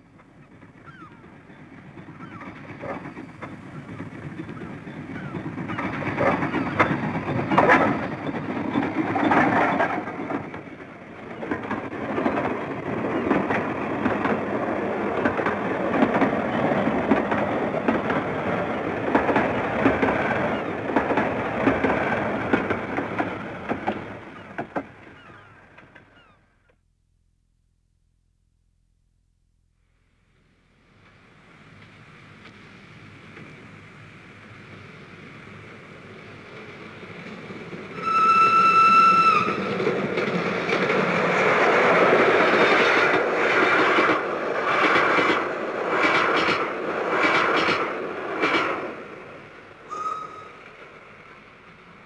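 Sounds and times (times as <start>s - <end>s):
steam locomotive running: 0.0s - 26.2s, 30.4s - 52.0s.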